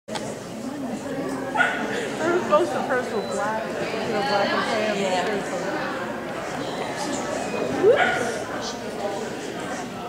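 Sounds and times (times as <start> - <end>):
people chattering in a hall: 0.1 - 10.0
dog barking: 1.6 - 1.8, 8.0 - 8.3.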